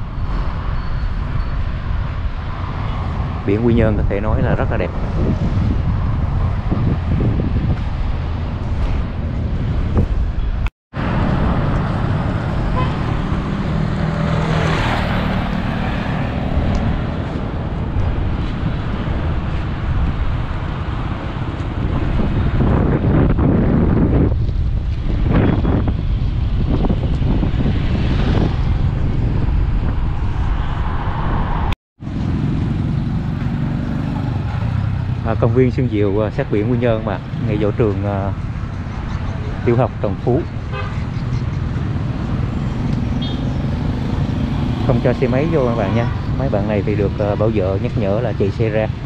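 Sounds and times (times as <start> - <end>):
road traffic: 0.0 - 49.0
wind buffeting microphone: 0.0 - 49.0.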